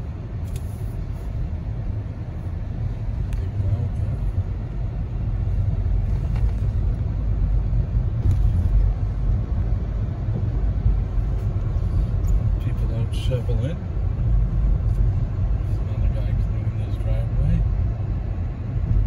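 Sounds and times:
car interior road and engine noise: 0.0s - 19.0s.

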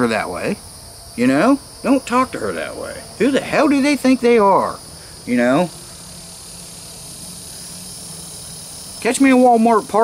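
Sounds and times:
insects chorus: 0.0s - 10.0s.

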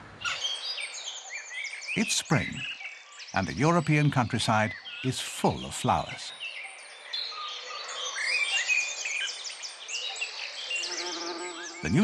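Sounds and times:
songbirds chirping and trilling: 0.0s - 12.0s
bumblebee buzzing: 10.8s - 12.0s.

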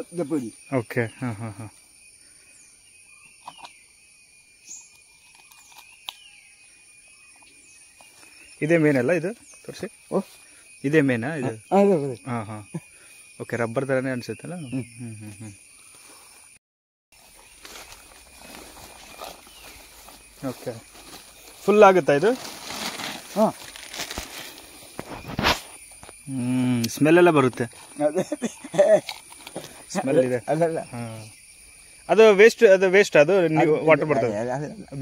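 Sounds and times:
insects droning: 0.0s - 35.0s
footsteps through leafy undergrowth: 17.2s - 25.9s
leaves rustling against legs: 17.2s - 26.2s.

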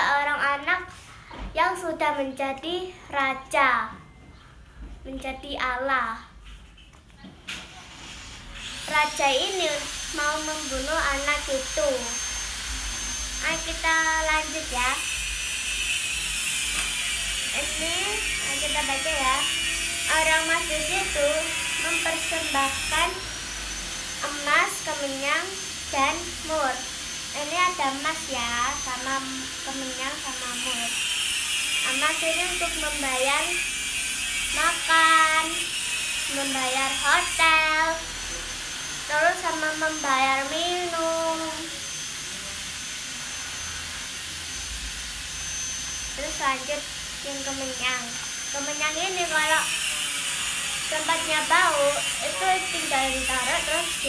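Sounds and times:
thin high whine: 0.0s - 54.0s
steady whirring with hiss: 7.6s - 54.0s.

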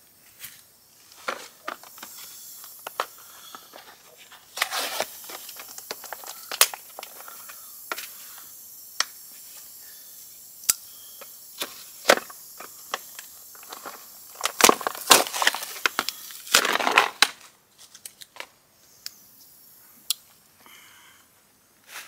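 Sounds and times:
air hissing out of a tire: 1.8s - 4.1s, 4.7s - 15.0s.

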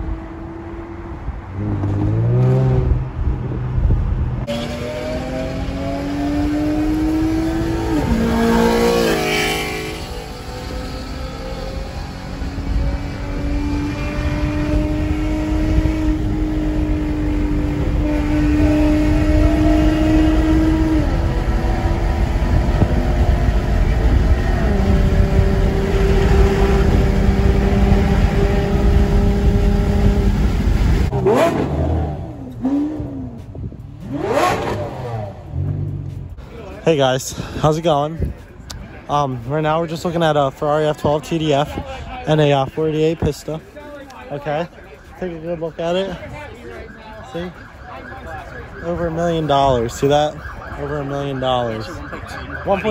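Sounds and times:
car engine shifting gears: 0.0s - 36.4s
engine revving: 4.4s - 36.2s.

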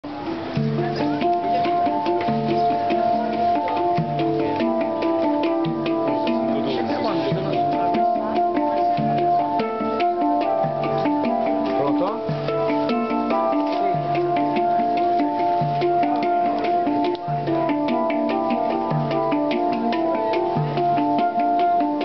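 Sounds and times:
handpan melody: 0.0s - 22.0s
deep low handpan note: 0.1s - 22.0s.

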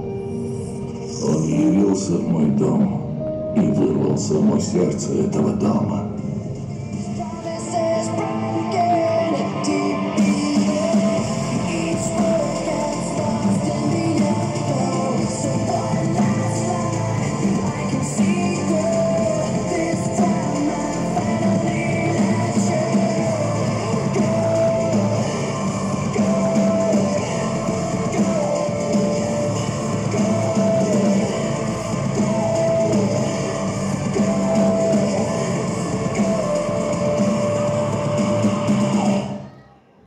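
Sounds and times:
rock music with electric guitar: 6.2s - 39.3s.

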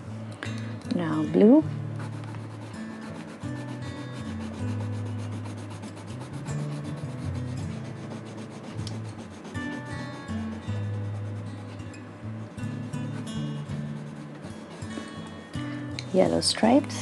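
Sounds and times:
soft background music: 0.0s - 17.0s
coloured pencil scratching on paper: 2.0s - 12.0s, 12.8s - 15.3s.

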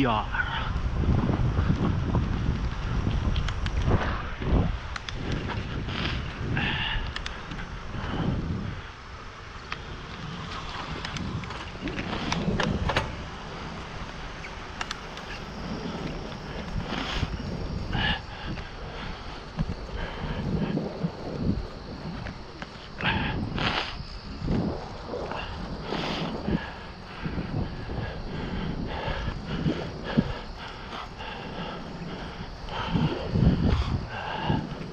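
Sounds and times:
bicycle tyres rolling on pavement: 0.0s - 34.9s
wind on microphone: 0.0s - 34.9s.

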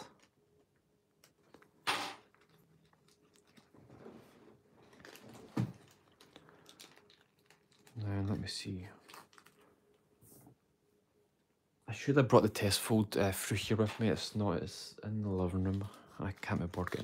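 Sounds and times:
paper crinkling and rustling: 2.4s - 10.0s, 15.1s - 17.0s.

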